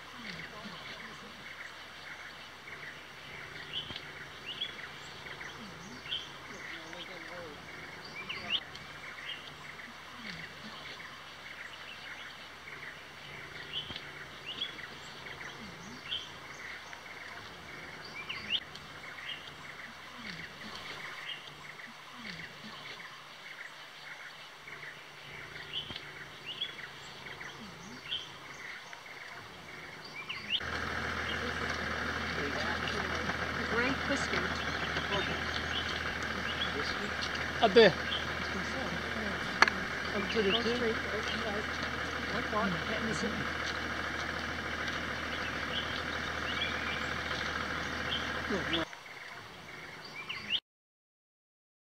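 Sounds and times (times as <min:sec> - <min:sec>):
birds chirping: 0:00.0 - 0:50.6.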